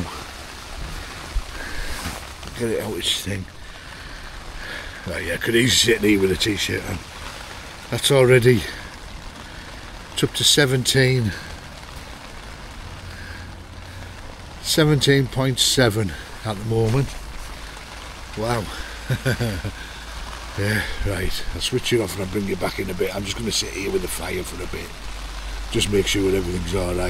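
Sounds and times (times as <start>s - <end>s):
heavy rain on tent fabric: 0.0s - 27.0s.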